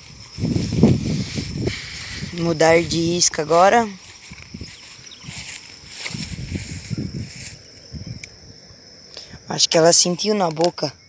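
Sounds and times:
low wind rumble: 0:00.0 - 0:10.2
high insect tone: 0:00.0 - 0:11.0.

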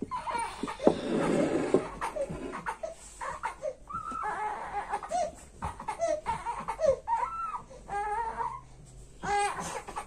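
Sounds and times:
baby whimpering: 0:00.0 - 0:10.0.

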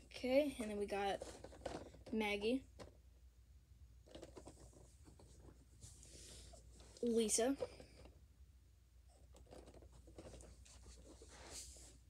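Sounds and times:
rustling of boxes: 0:00.1 - 0:03.0, 0:04.0 - 0:08.2, 0:09.2 - 0:12.0.

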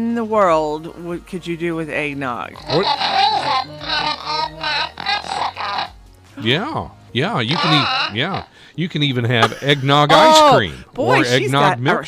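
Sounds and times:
people laughing: 0:02.6 - 0:06.0, 0:07.5 - 0:08.5, 0:09.2 - 0:11.3.

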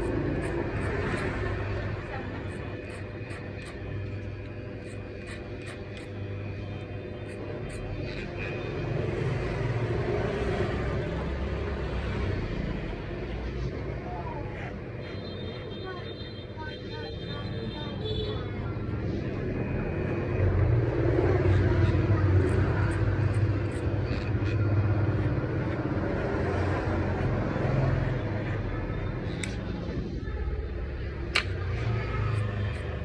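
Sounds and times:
electric hair clippers buzzing: 0:00.0 - 0:09.2, 0:22.3 - 0:25.4, 0:31.3 - 0:33.0.

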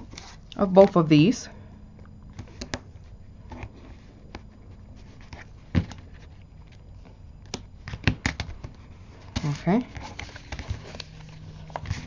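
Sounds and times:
tape handling noises against paper: 0:02.3 - 0:12.0.

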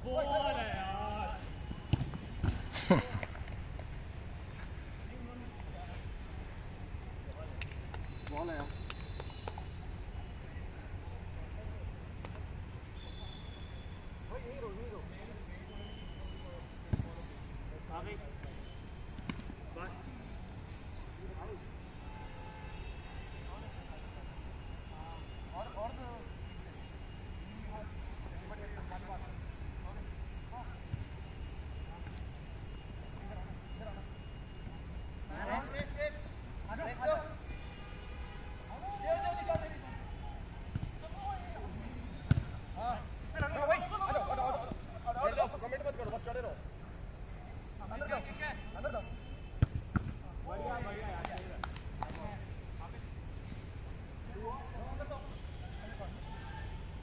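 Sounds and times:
football kick thuds: 0:01.8 - 0:02.7, 0:40.7 - 0:41.0, 0:42.2 - 0:42.6, 0:49.6 - 0:50.2
players shouting: 0:38.6 - 0:46.4.

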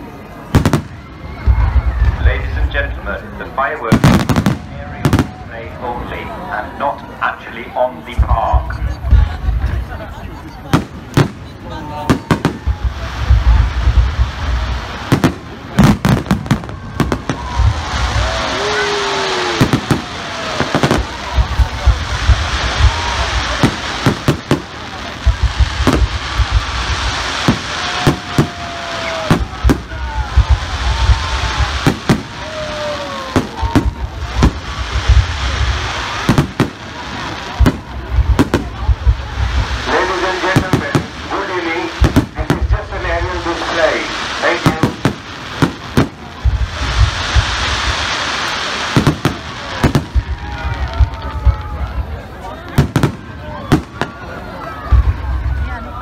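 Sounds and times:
crackle of bursting fireworks: 0:00.0 - 0:56.0
fireworks bangs: 0:00.0 - 0:56.0
people's voices: 0:00.0 - 0:56.0.

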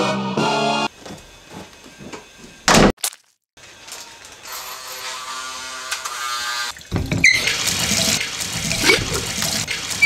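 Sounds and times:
shower water running: 0:06.7 - 0:10.0.

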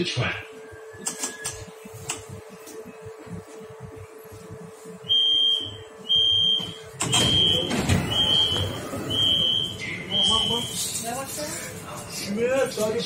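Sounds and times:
steady hum: 0:00.0 - 0:13.0
door warning beeps: 0:05.1 - 0:10.8
train doors sliding open: 0:06.9 - 0:09.5.

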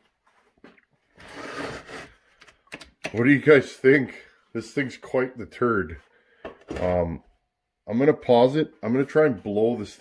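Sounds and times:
chainsaw scraping on wooden bench: 0:01.2 - 0:02.2
sharp clicks and knocks: 0:02.4 - 0:03.3.

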